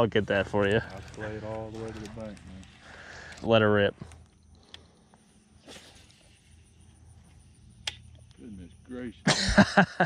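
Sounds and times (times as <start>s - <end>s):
insects chirping: 0.0s - 10.0s
sharp click: 7.8s - 8.2s
short laugh: 9.2s - 10.0s.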